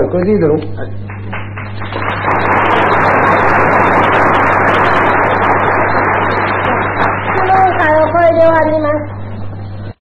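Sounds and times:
steady low hum: 0:00.0 - 0:10.0
audience applauding: 0:01.1 - 0:08.6.

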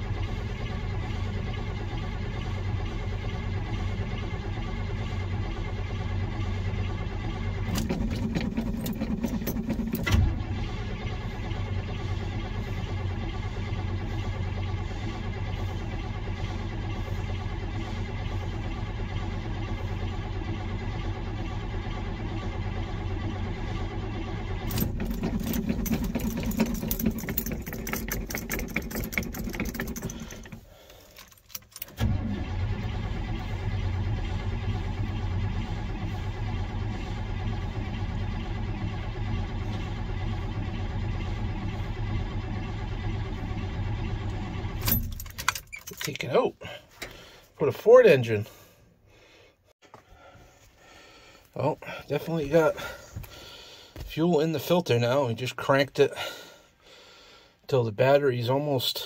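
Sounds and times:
car engine cranking by starter: 0:00.0 - 0:59.0.

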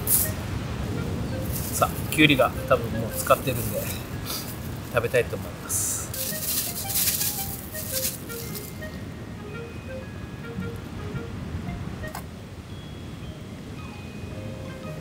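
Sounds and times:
light plucked background music: 0:00.0 - 0:12.4, 0:13.2 - 0:15.0
plastic bag crinkling: 0:06.1 - 0:09.0.

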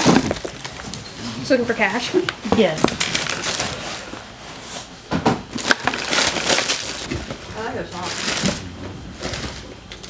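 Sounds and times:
tissue paper crinkling: 0:02.8 - 0:04.0, 0:05.6 - 0:07.1, 0:07.9 - 0:08.6.

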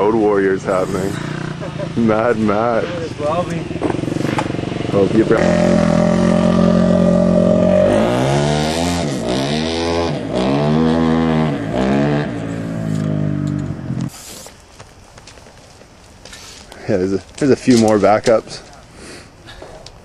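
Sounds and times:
vehicle engine running and revving: 0:00.0 - 0:14.1.

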